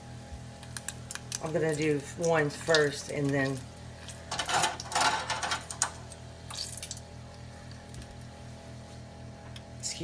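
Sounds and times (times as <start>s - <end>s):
food sizzling in hot oil: 0.5s - 7.2s.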